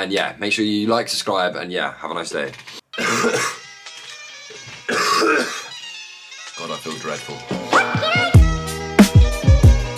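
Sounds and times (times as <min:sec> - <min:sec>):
man coughing: 0:03.0 - 0:03.6, 0:04.9 - 0:05.7.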